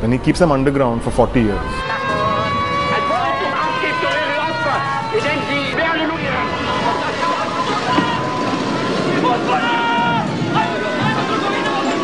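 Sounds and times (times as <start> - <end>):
voices shouting: 1.6 - 12.0.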